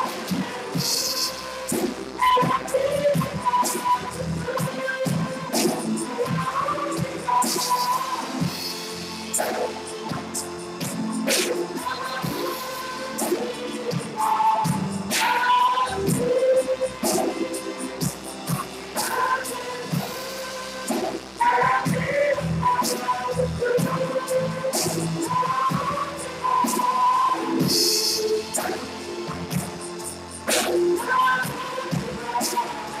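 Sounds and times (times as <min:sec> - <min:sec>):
band playing: 0:00.0 - 0:25.9
drum and cymbal strikes: 0:00.0 - 0:33.0.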